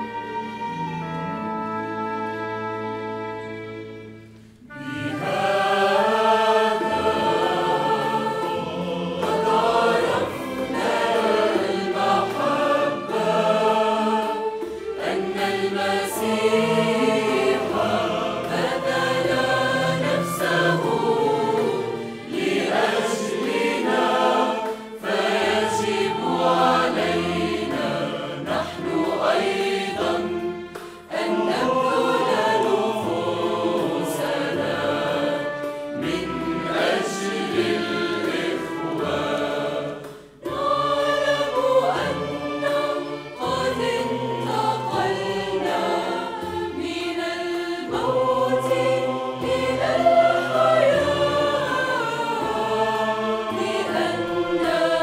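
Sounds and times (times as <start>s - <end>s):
mixed choir singing in harmony: 0.0s - 3.6s, 4.6s - 55.0s
string ensemble: 0.0s - 55.0s.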